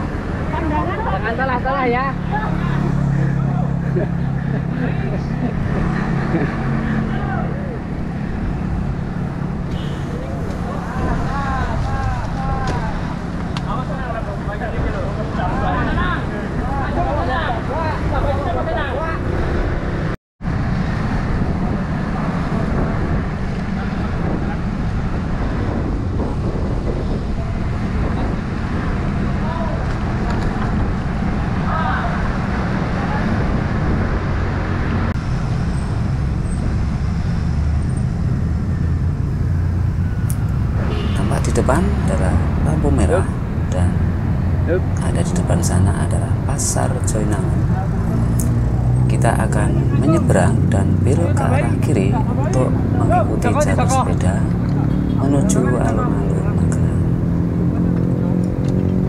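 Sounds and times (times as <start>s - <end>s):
wind and road rumble: 0.0s - 59.0s
people talking indistinctly: 40.8s - 57.1s.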